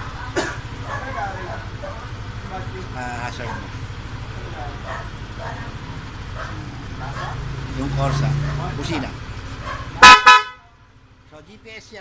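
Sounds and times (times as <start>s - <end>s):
scooter horn beeps: 10.0s - 10.7s.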